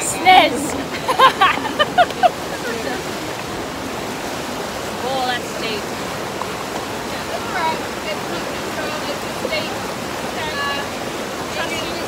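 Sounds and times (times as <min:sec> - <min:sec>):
fast-flowing river rushing: 0:00.0 - 0:12.0.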